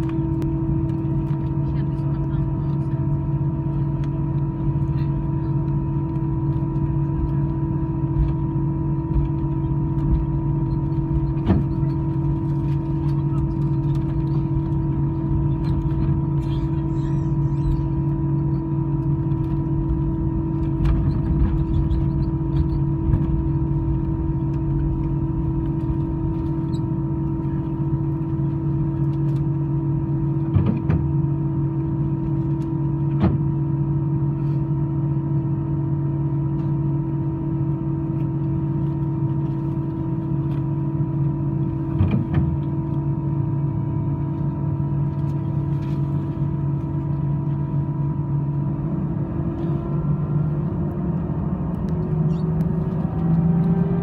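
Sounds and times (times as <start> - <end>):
jet engine cabin hum: 0.0 - 54.0.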